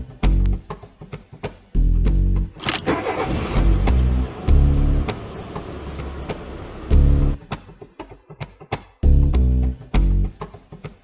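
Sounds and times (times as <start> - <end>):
music with heavy bass: 0.0 - 0.8, 1.8 - 2.6, 3.6 - 7.8, 8.8 - 10.9
car engine sound effect: 2.6 - 7.4.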